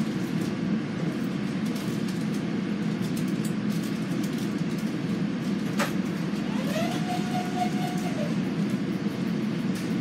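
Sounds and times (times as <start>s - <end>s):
train car low rumble: 0.0s - 10.0s.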